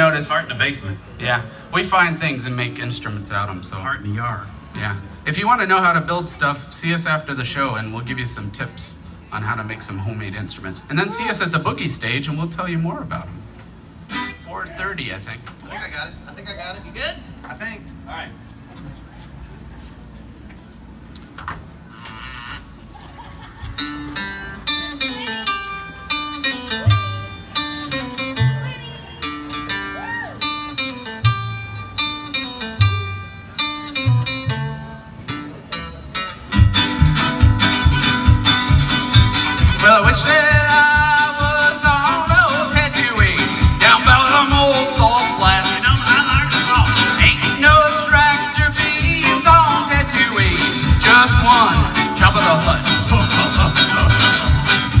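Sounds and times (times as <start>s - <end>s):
acoustic string band playing: 0.0s - 8.5s, 24.0s - 55.0s
slow low bass line: 36.6s - 55.0s.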